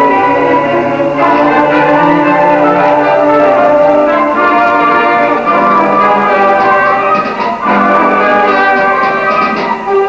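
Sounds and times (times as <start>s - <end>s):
school band holding sustained chords: 0.0s - 10.0s.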